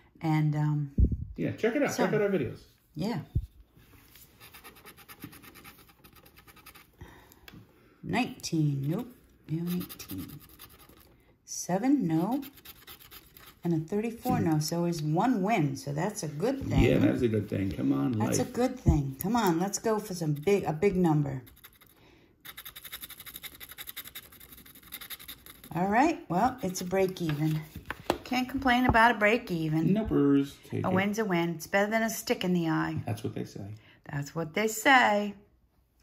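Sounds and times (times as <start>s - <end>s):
scratcher scraping a ticket: 8.7s - 11.1s, 12.1s - 14.6s, 19.2s - 25.8s.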